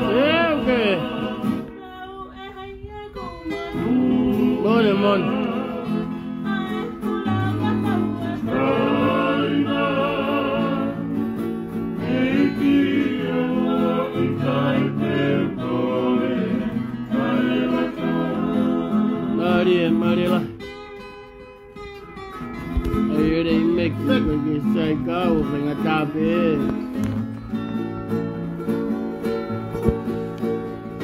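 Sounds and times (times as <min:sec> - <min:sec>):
strummed acoustic guitar: 0:00.0 - 0:31.0
woman singing: 0:01.4 - 0:04.0, 0:05.4 - 0:09.6.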